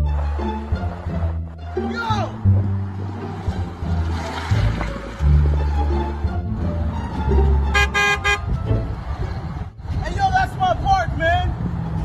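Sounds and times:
background music: 0.0s - 10.6s
car horn honking: 7.6s - 8.6s.

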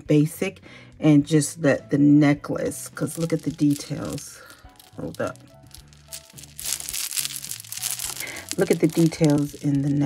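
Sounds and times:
background music low notes: 0.0s - 10.0s
beaded necklace rustling: 2.9s - 10.0s.

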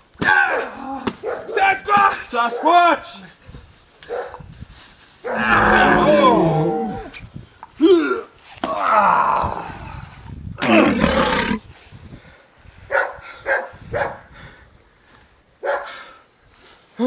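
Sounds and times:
men yelling: 5.4s - 7.1s.

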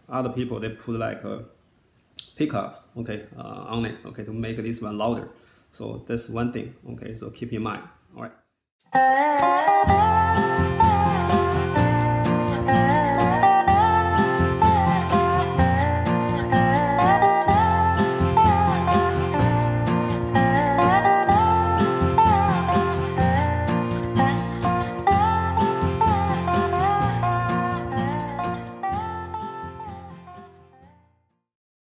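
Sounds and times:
slide guitar melody: 8.9s - 31.1s.

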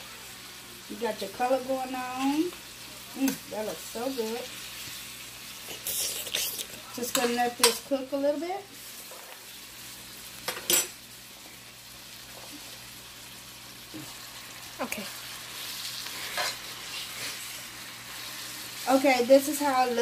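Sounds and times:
meat and onions sizzling: 0.0s - 20.0s
spatula scraping a pan: 15.5s - 19.0s.

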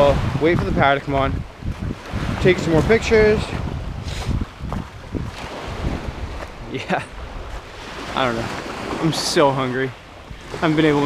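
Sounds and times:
faint surf: 0.0s - 11.0s
wind buffeting microphone: 0.0s - 11.0s.

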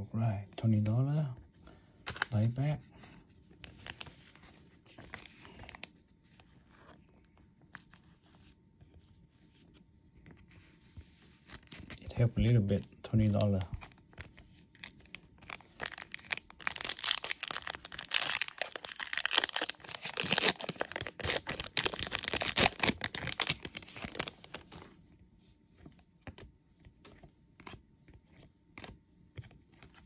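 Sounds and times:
foil wrapper tearing and crinkling: 14.8s - 24.7s
faint clicks of card handling: 25.8s - 30.0s.

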